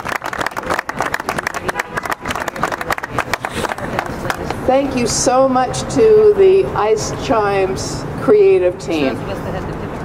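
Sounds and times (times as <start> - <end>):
crowd applauding: 0.0 - 4.5.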